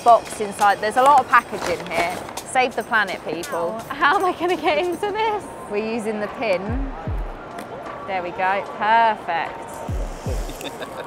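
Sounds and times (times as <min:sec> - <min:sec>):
background music: 0:00.0 - 0:11.0
person laughing: 0:10.3 - 0:11.0.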